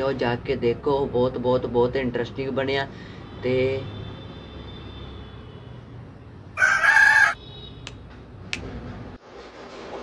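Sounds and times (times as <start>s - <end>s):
rooster crowing: 6.5s - 7.4s.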